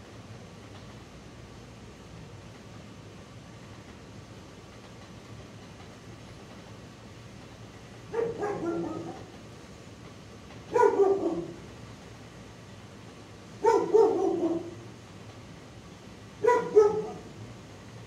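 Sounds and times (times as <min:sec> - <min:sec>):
dog barking: 0:08.1 - 0:09.3, 0:10.7 - 0:11.6, 0:13.6 - 0:14.9, 0:16.4 - 0:17.4.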